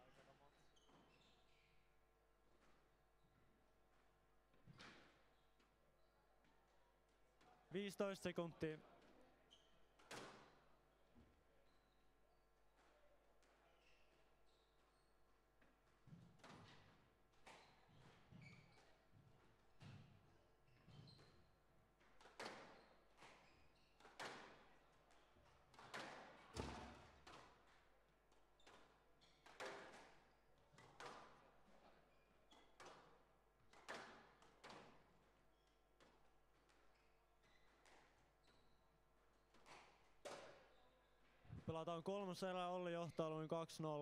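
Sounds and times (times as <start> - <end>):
squash ball striking rackets and walls: 22.0 - 23.4, 24.0 - 27.7, 33.7 - 35.2, 39.5 - 40.7.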